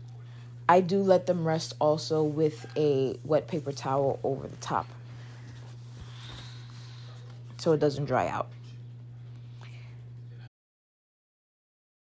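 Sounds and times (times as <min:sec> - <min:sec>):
steady low hum: 0:00.0 - 0:10.5.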